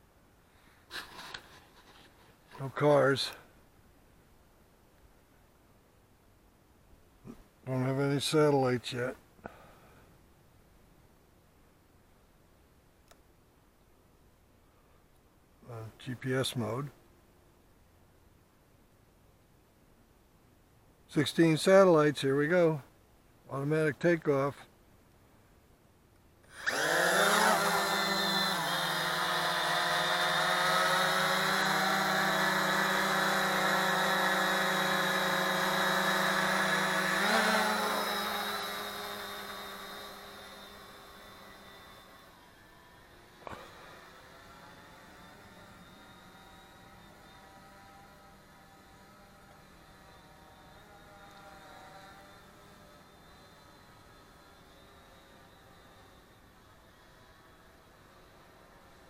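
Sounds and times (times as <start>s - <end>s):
drone propellers whining: 26.5s - 59.0s.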